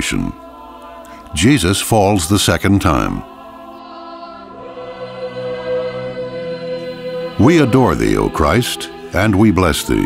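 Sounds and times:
person narrating: 0.0s - 0.4s, 1.3s - 3.3s, 7.4s - 10.0s
choral music sustained chords: 0.0s - 10.0s.

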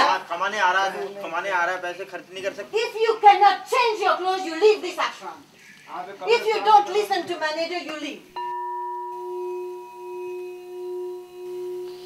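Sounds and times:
crystal singing bowl ringing: 8.4s - 12.0s.

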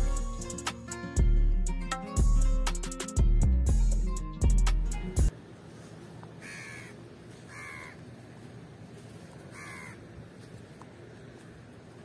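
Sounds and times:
crow cawing: 6.4s - 8.0s, 9.5s - 10.1s.

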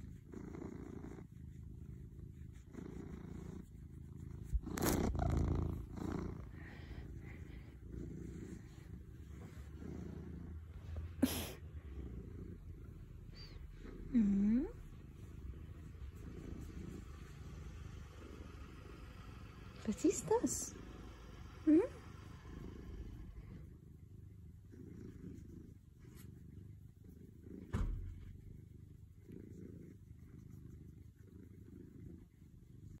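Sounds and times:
cat purring: 0.0s - 33.0s
low hum-like sound: 0.9s - 33.0s
thump: 27.7s - 28.4s.

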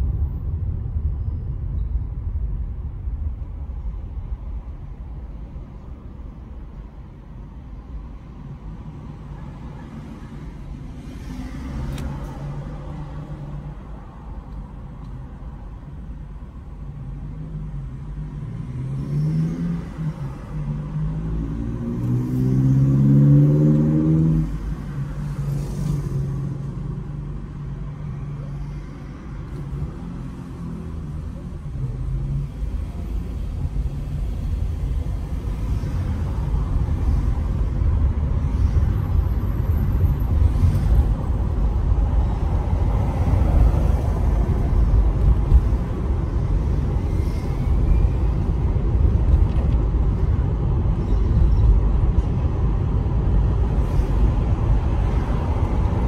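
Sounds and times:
car engine hum and rumble: 0.0s - 56.0s.

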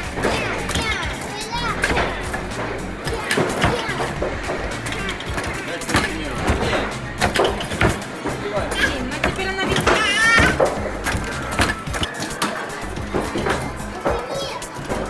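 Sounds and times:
children's voices: 0.0s - 5.8s, 8.7s - 11.5s, 12.2s - 15.0s.

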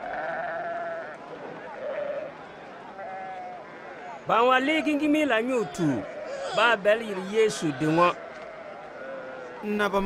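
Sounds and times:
sheep bleating: 0.0s - 9.8s.

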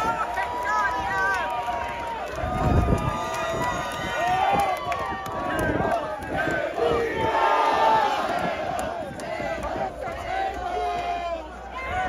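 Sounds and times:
crowd yelling and cheering: 0.0s - 12.0s.

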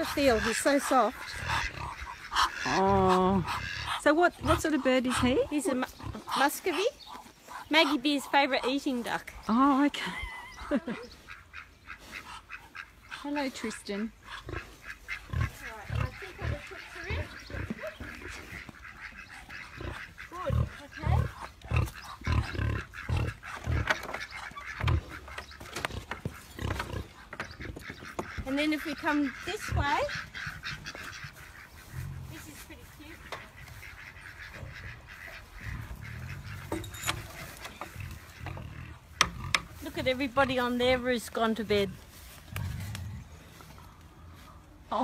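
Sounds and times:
pig grunting: 0.0s - 9.0s, 12.1s - 32.5s, 33.7s - 39.8s.

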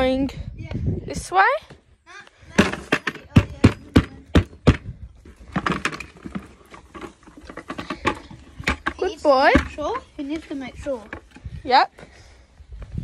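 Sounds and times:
rustling and handling noise: 5.2s - 11.5s.

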